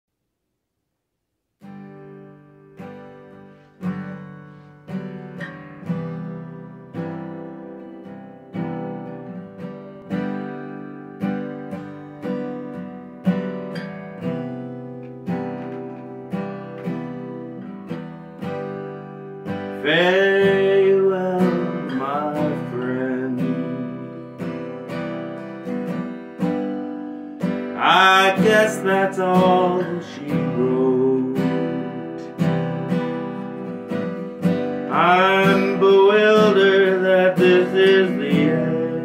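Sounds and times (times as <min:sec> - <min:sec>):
acoustic guitar chords: 0:00.8 - 0:39.0
person singing: 0:19.7 - 0:24.4, 0:27.7 - 0:32.5, 0:34.8 - 0:39.0.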